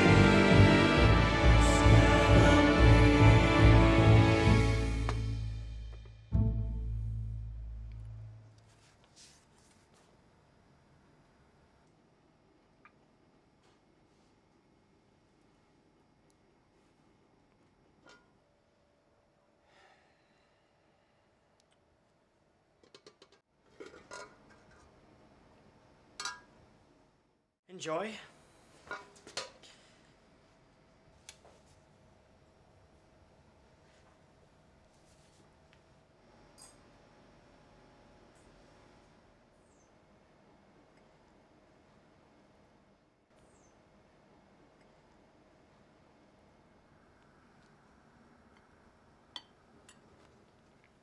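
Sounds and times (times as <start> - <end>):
metal cloche clinking on plate: 26.2 - 26.5.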